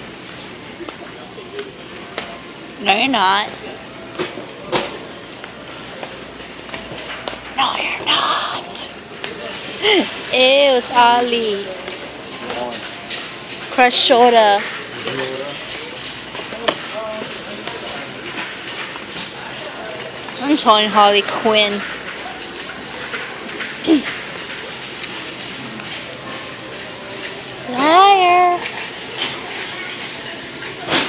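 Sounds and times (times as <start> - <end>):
busy store background noise: 0.0 - 31.0.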